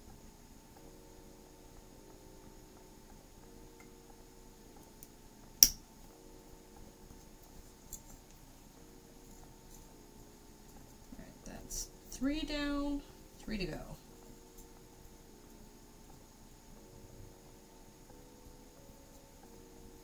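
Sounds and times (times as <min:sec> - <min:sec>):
sharp metallic snip: 0:05.6 - 0:05.8.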